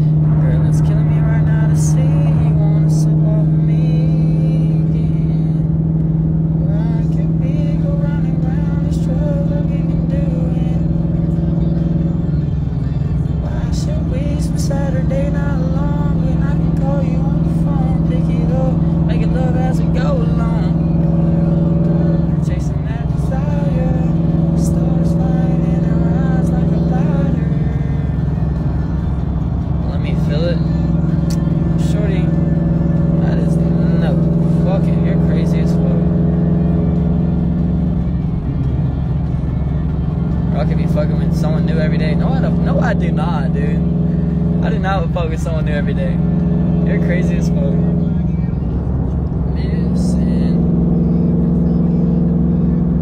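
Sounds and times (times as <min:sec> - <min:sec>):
music playing: 0:00.0 - 0:06.0, 0:06.6 - 0:53.0
car engine and road drone: 0:00.0 - 0:53.0.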